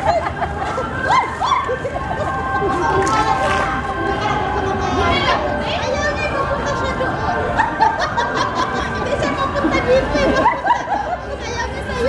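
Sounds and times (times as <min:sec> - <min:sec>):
women laughing: 0:00.0 - 0:03.0, 0:06.8 - 0:12.0
overlapping chatter: 0:00.0 - 0:12.0.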